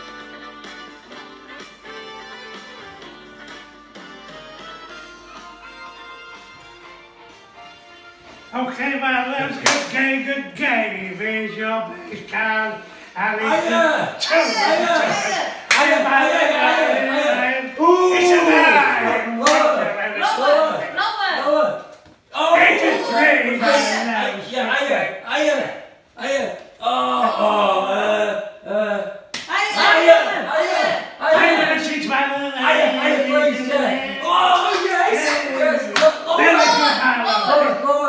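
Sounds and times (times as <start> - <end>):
excited voices calling out: 9.4 - 38.0.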